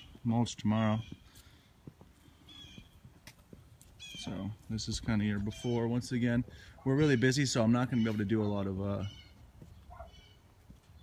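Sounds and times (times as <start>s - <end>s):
faint footsteps: 0.0s - 7.2s, 9.2s - 11.0s.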